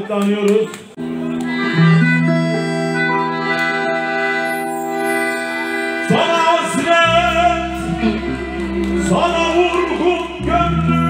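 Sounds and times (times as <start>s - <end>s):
folk band instrumental: 0.0s - 11.0s
strong low note: 6.1s - 11.0s.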